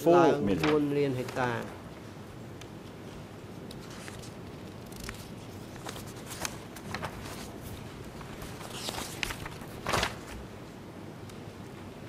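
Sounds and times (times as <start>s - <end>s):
paper page turning: 0.5s - 1.8s, 3.7s - 10.5s.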